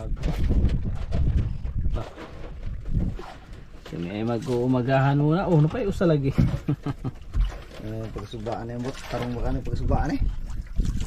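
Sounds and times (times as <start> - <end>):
men laughing: 6.2 - 7.4.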